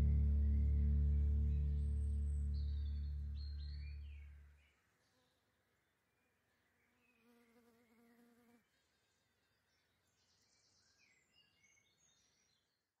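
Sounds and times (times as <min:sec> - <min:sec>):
faint buzzing hum: 0:00.0 - 0:04.6.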